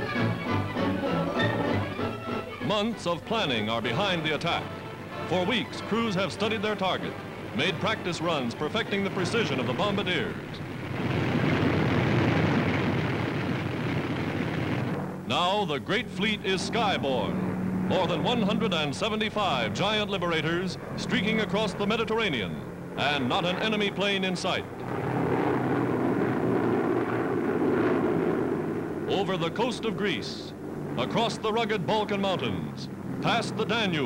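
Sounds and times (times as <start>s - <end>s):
bomber engines droning: 0.0s - 34.0s.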